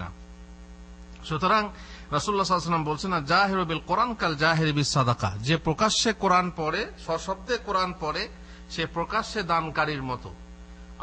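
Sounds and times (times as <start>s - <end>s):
electrical mains hum: 0.0s - 11.0s
man's voice: 1.3s - 10.4s.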